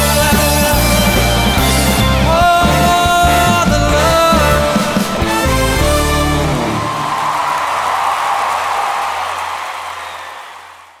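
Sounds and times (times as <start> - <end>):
swing band playing: 0.0 - 7.1.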